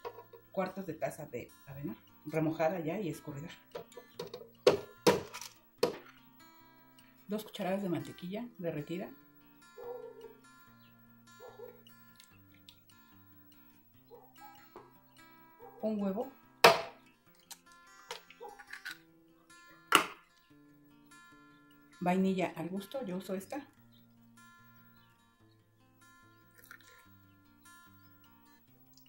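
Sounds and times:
plastic cup knocking on blender jar: 0.0s - 0.4s, 3.7s - 6.0s
soft acoustic guitar music: 0.0s - 29.0s
egg cracking against jar: 16.6s - 19.1s, 26.6s - 27.1s.

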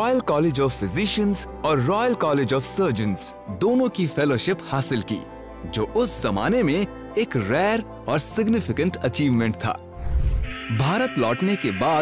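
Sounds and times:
background music: 0.0s - 12.0s
person narrating: 10.7s - 12.0s.

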